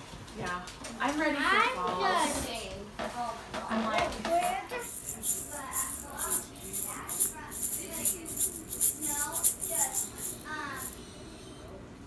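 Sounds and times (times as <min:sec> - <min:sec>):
voices: 0:03.6 - 0:11.3
rhythmic shaking jingle: 0:04.4 - 0:11.0.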